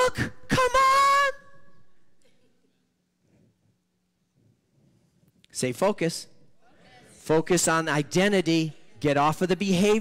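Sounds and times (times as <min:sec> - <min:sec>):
man shouting drawn-out word: 0:00.0 - 0:01.5
echo in a hall: 0:00.0 - 0:10.0.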